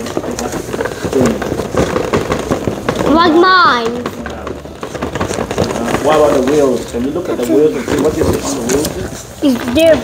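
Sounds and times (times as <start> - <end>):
cardboard box crackling: 0.0 - 10.0.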